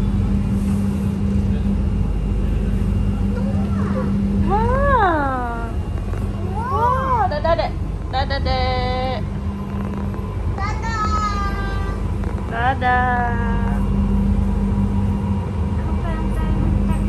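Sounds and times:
train rumbling on track: 0.0 - 17.0.

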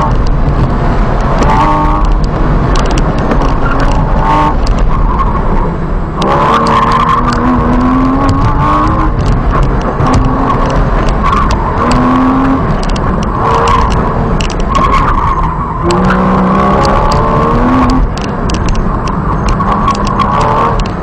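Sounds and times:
car engine under load: 0.0 - 21.0.

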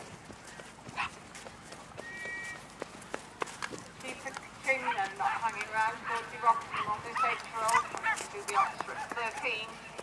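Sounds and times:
horse hoofbeats on turf: 0.0 - 10.0.

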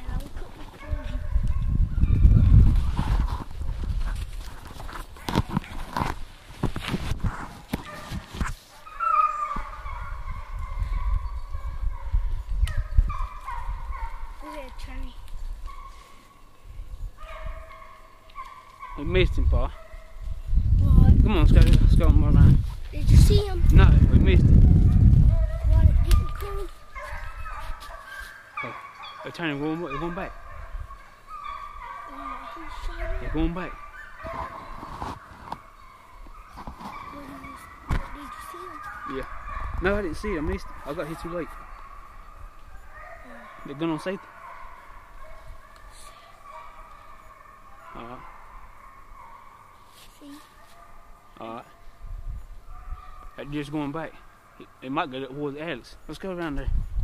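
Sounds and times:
camera mic rumble: 0.0 - 8.6, 20.2 - 27.9, 32.6 - 41.6
footsteps crunching through dry brush: 2.4 - 9.8, 26.2 - 28.5, 32.3 - 39.1
hounds baying: 7.8 - 16.5, 17.1 - 20.4, 24.8 - 56.1.

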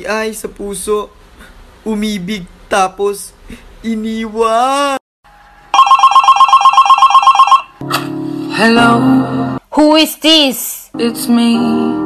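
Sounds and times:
telephone ringing: 5.7 - 7.8.

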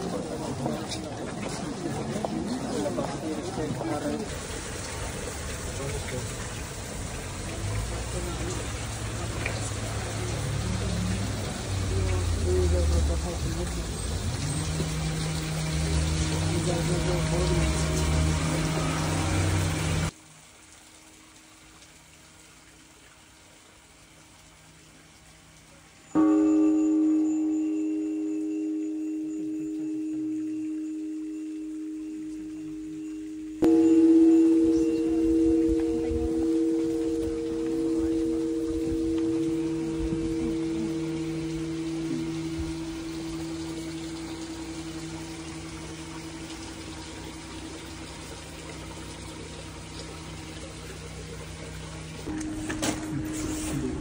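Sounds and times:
metal bell ringing: 26.2 - 49.1.

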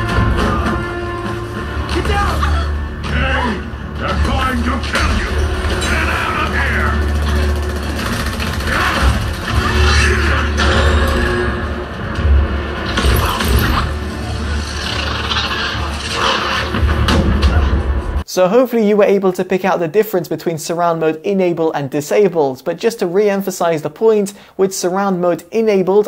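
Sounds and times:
film music: 0.0 - 18.3
film dialogue: 0.0 - 26.0.

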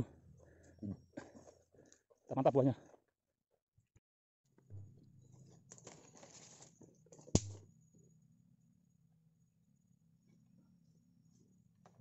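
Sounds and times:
rustling scrape: 5.9 - 6.8.

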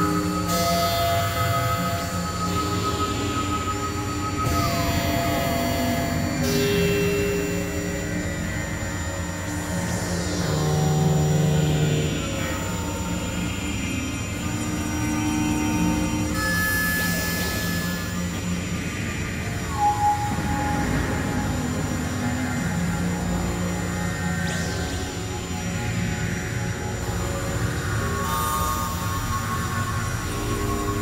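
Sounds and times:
synthesizer drone music: 17.1 - 31.0.

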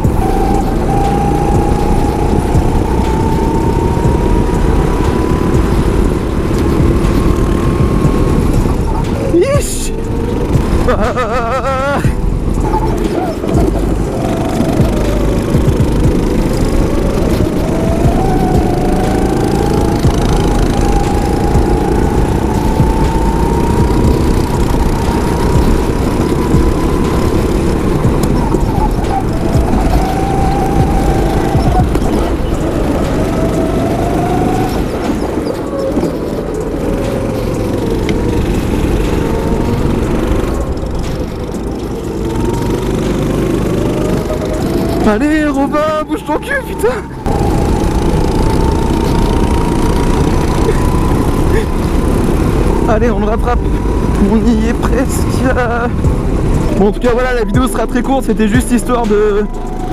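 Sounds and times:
go-kart engine revving: 0.0 - 59.9.

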